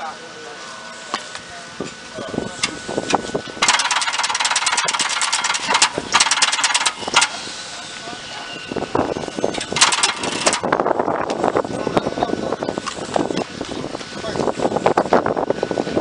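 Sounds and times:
rattles: 2.6 - 7.4, 9.4 - 11.4.

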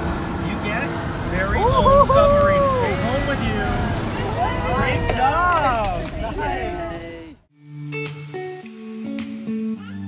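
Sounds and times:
indistinct voices: 1.4 - 7.4.

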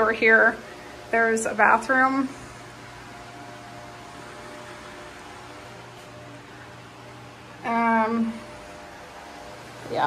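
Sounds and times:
constant low hum: 0.0 - 10.0
faint steady whine: 0.0 - 10.0.

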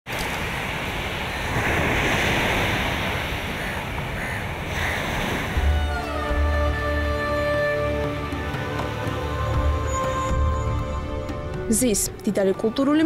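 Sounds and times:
ocean waves breaking: 0.1 - 11.7.

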